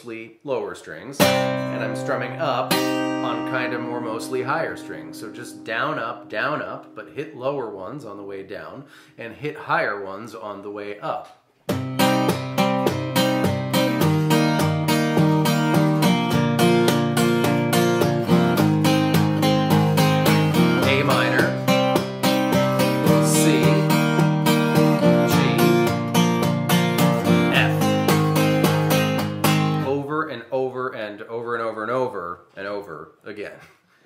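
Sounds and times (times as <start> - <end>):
acoustic guitar strumming: 1.2 - 8.5, 11.7 - 30.0.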